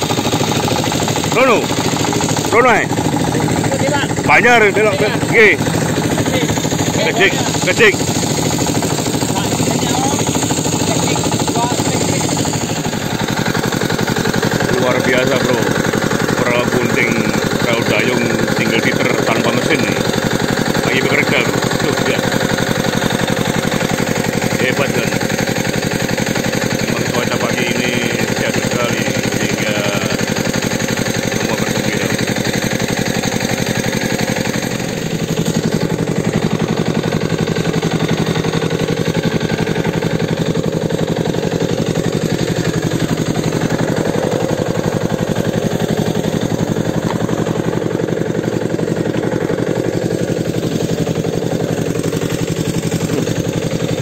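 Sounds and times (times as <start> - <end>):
boat engine chugging: 0.0 - 54.0.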